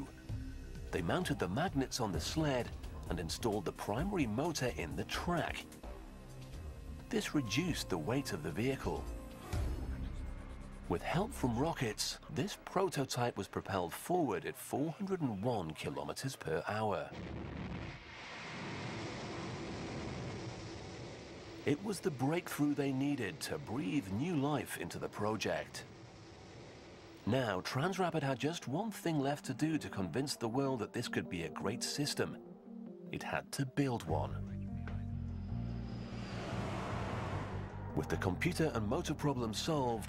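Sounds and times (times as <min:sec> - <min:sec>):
background music with low bass: 0:00.0 - 0:14.3, 0:27.2 - 0:40.0
rocket motors rushing: 0:17.6 - 0:27.2
vehicle rushing past: 0:35.4 - 0:39.4.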